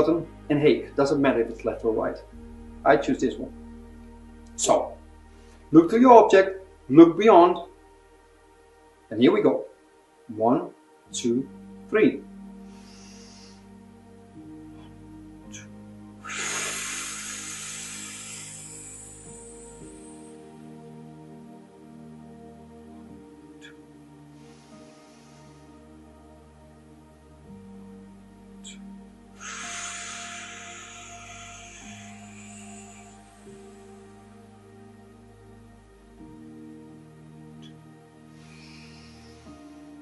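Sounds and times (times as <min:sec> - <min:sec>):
soft background music: 0:00.0 - 0:40.0
slow breath hissing: 0:05.2 - 0:05.7, 0:12.4 - 0:21.8, 0:23.1 - 0:26.4, 0:27.6 - 0:35.3, 0:37.6 - 0:40.0
person exhaling through mouth: 0:15.5 - 0:20.3, 0:29.4 - 0:34.0.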